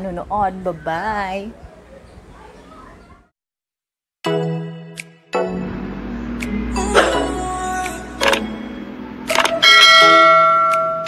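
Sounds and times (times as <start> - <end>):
quick clicks: 8.2 - 8.4
loud bell chime: 9.6 - 11.0.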